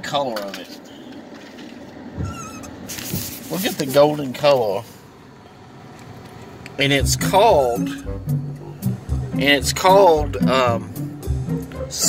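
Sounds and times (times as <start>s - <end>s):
low rumble inside car: 0.9s - 9.8s
wavering squeak: 2.1s - 3.1s.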